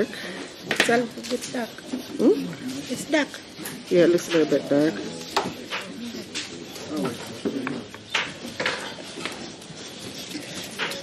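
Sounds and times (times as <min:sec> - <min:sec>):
faint voices: 0:01.2 - 0:11.0.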